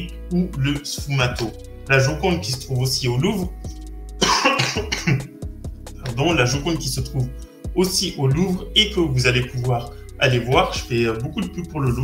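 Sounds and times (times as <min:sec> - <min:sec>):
quiet background music: 0:00.0 - 0:12.0
person coughing: 0:04.2 - 0:05.4.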